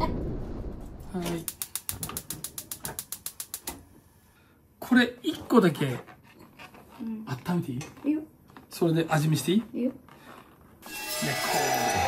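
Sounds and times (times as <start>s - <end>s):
gas stove igniter clicking: 1.5s - 3.8s.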